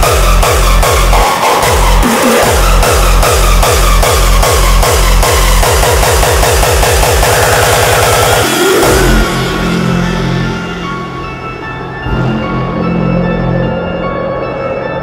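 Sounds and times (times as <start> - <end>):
heavy kick drum: 0.0 - 9.9
hardstyle dance music: 0.0 - 13.8.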